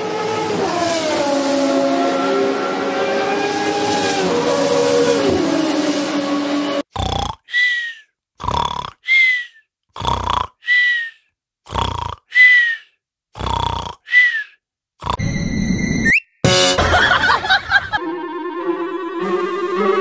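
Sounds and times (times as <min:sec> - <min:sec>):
cat snoring and whistling: 0:07.0 - 0:12.8, 0:13.4 - 0:16.4.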